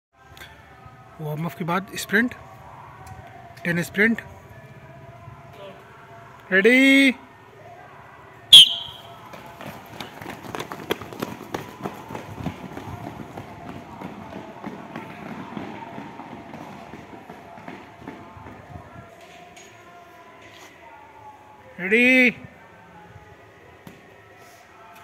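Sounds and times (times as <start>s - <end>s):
sharp high-pitched whistle blast: 8.5s - 9.2s
running footsteps on brick paving: 8.6s - 19.1s.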